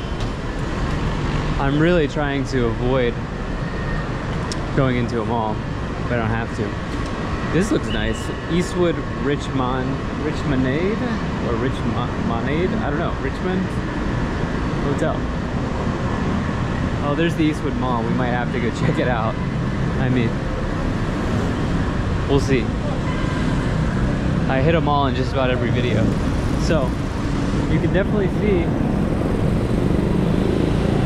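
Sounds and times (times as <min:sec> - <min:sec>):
cars passing: 0:00.0 - 0:31.0
street traffic noise: 0:00.0 - 0:31.0
motorcycles passing: 0:05.8 - 0:31.0.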